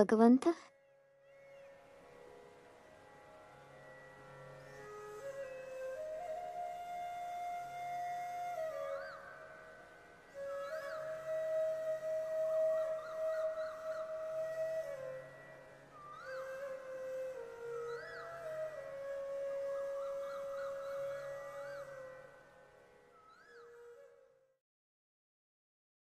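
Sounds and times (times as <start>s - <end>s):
flute with ornamental slides: 4.7s - 22.5s.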